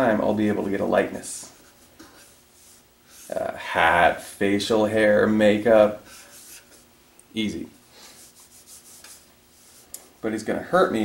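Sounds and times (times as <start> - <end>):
marker scratching on paper: 1.6 - 3.4, 6.1 - 6.9, 8.2 - 9.8.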